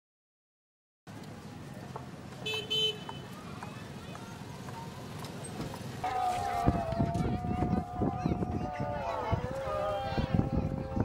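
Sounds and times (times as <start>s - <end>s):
vehicle horn honking: 2.4s - 3.3s.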